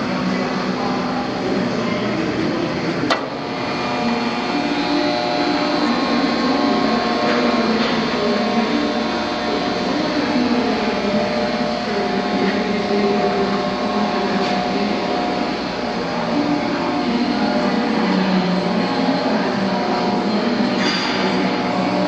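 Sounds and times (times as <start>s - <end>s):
blender motor humming: 3.3s - 17.7s.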